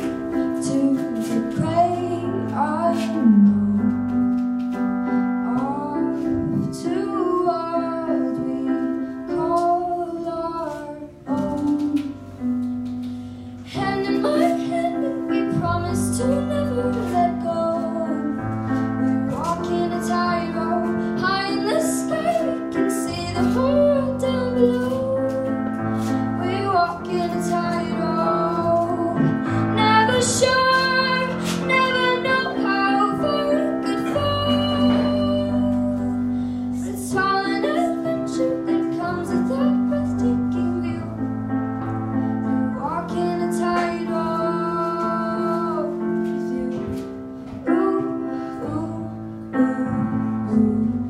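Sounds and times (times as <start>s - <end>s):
girl singing a ballad: 0.0s - 51.0s
piano chords: 0.0s - 51.0s.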